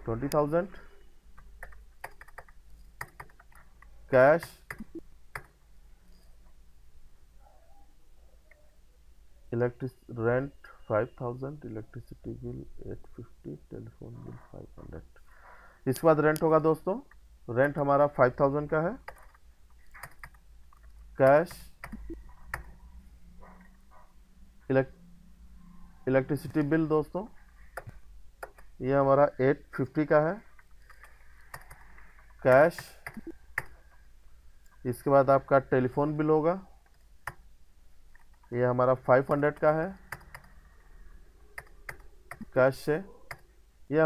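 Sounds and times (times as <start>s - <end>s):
keyboard keys clicking: 1.4s - 5.6s, 19.0s - 22.7s.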